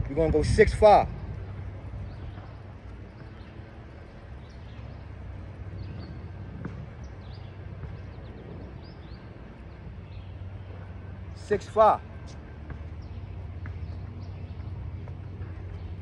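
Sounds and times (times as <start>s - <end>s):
birds chirping: 0.0s - 16.0s
low outdoor rumble: 0.0s - 16.0s.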